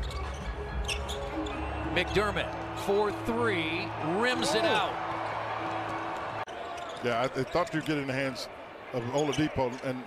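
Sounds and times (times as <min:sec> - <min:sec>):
sneaker squeak: 0:00.0 - 0:01.9, 0:06.5 - 0:07.1.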